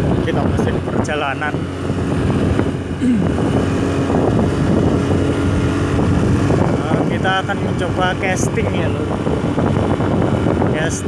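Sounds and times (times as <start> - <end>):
small motorcycle engine running: 0.0 - 11.0
wind rushing over microphone: 0.0 - 11.0.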